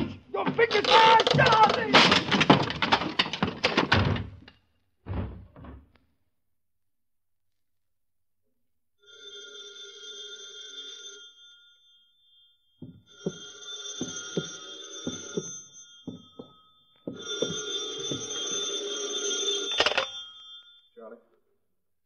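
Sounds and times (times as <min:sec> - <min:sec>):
telephone bell ringing: 0:09.0 - 0:21.0.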